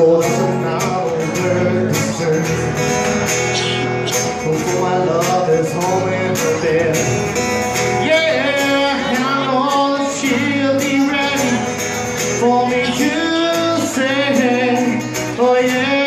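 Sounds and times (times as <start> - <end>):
acoustic guitar strumming: 0.0 - 16.0.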